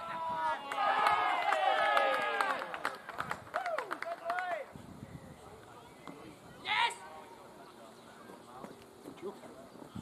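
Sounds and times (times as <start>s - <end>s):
players shouting: 0.0s - 2.9s.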